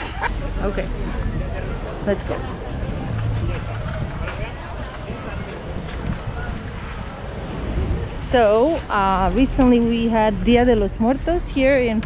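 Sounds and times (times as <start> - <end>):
faint voices of passers-by: 0.0 - 12.0
wind buffeting microphone: 0.0 - 12.0.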